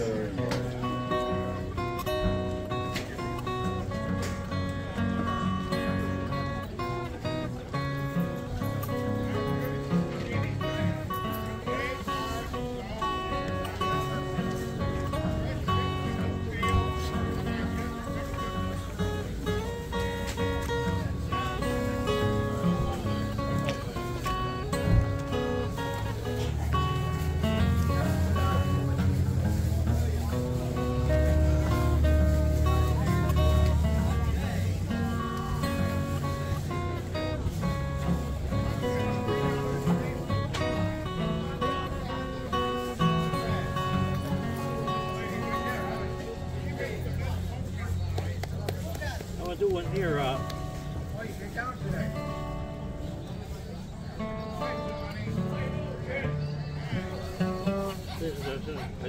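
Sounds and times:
fingerstyle acoustic guitar: 0:00.0 - 0:59.0.

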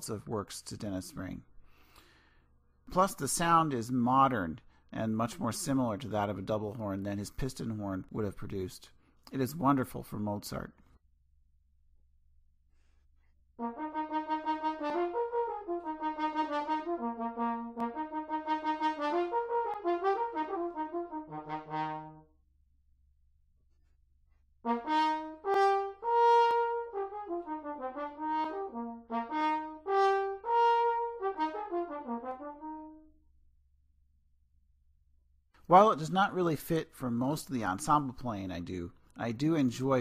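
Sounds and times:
french horn playing solo: 0:13.6 - 0:22.3, 0:24.6 - 0:33.1.

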